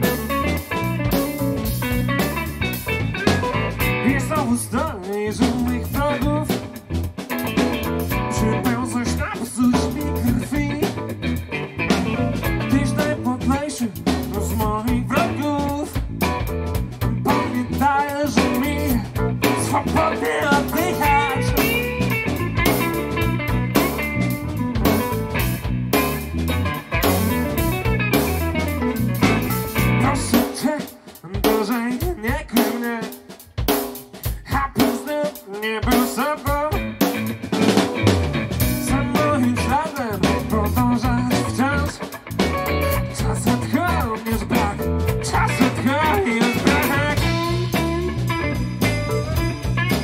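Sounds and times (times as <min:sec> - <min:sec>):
keyboards: 0:00.0 - 0:31.0, 0:36.2 - 0:50.0
electric guitar: 0:00.0 - 0:32.5, 0:33.4 - 0:50.0
bass guitar: 0:00.0 - 0:50.0
drum kit: 0:00.0 - 0:50.0.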